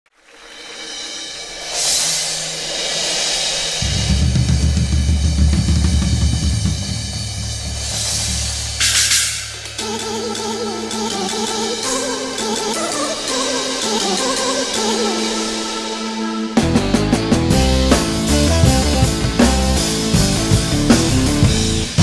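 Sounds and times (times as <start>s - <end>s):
drums rumbling: 0.2s - 22.0s
cymbal crash: 0.3s - 22.0s
cymbals ringing: 0.5s - 16.9s.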